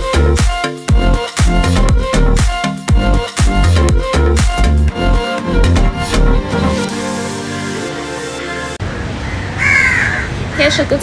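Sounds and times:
orchestral electronic music: 0:00.0 - 0:08.8
crow cawing: 0:08.9 - 0:10.8.

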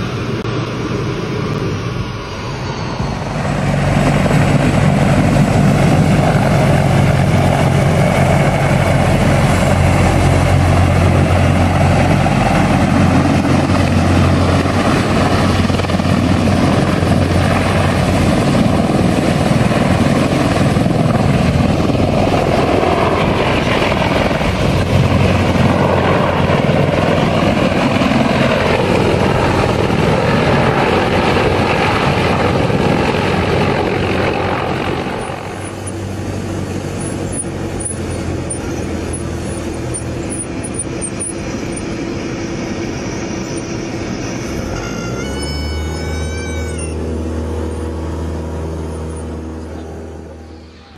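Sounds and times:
rush of rotor wash: 0:00.0 - 0:44.8
helicopter rotor beat: 0:00.0 - 0:50.9
helicopter turbine noise: 0:00.0 - 0:50.9.

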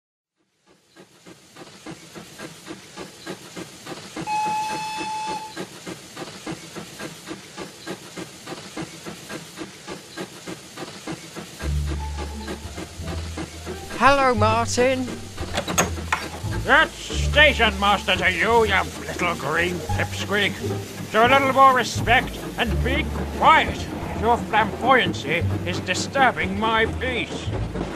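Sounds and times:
steam locomotive chuffing: 0:00.4 - 0:27.9
locomotive whistle blast: 0:04.2 - 0:05.7
low steady drone: 0:11.6 - 0:27.9.

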